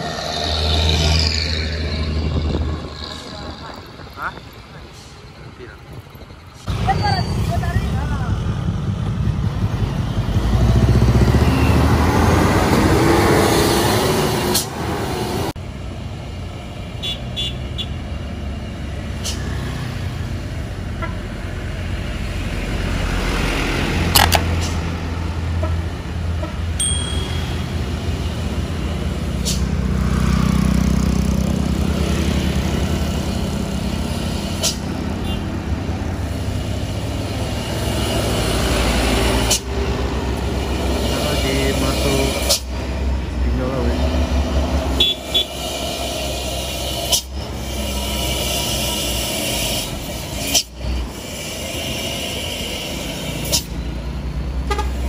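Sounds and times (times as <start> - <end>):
truck engine revving: 0.0 - 5.6, 6.6 - 15.6, 27.4 - 55.0
diesel trucks passing: 0.0 - 55.0
road traffic noise: 0.0 - 55.0.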